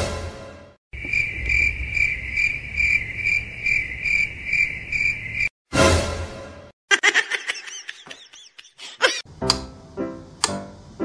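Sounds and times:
crickets chirping: 1.0 - 5.5.

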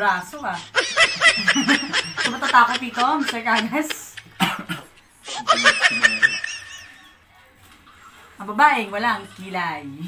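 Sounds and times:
people laughing: 0.6 - 4.5, 5.3 - 7.2.

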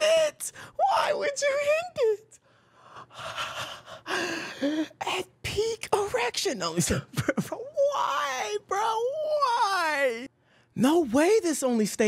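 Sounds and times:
man gasping breathily: 2.6 - 5.0.

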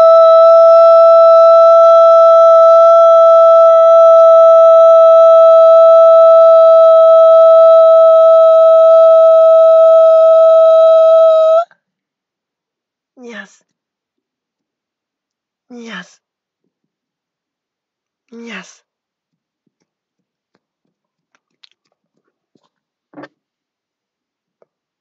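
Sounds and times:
person singing long high note: 0.0 - 11.7.

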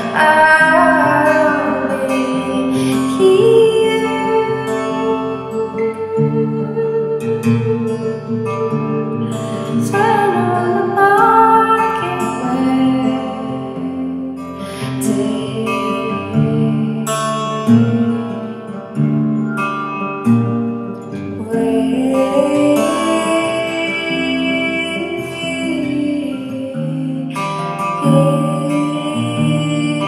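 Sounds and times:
slow sparse song with guitar: 0.0 - 30.0.

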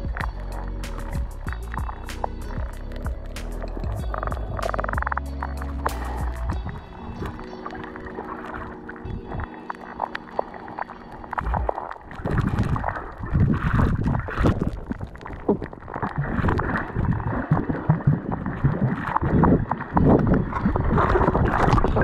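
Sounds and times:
background music with held tones: 0.0 - 12.2
water sloshing and gurgling: 0.0 - 22.0.

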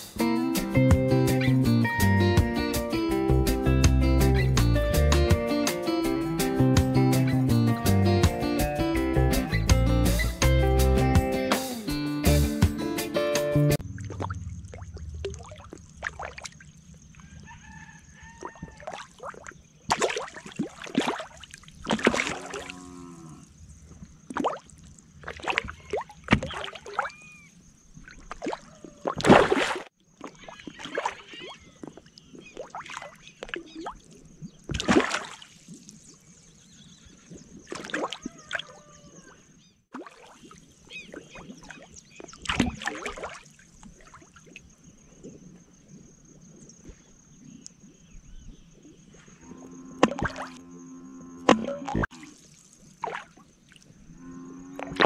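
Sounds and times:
fish splashing at surface: 13.8 - 17.4, 18.4 - 22.8, 24.3 - 27.2, 28.0 - 36.3, 37.6 - 38.8, 39.9 - 44.6, 50.0 - 50.6, 51.5 - 53.9.

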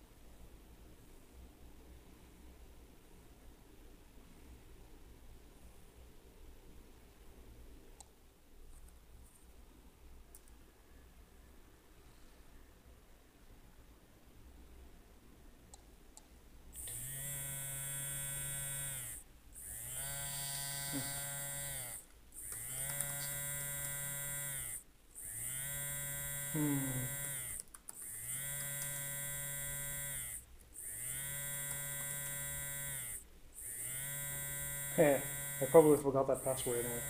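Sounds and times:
phone vibrating on wooden table: 16.9 - 37.0.

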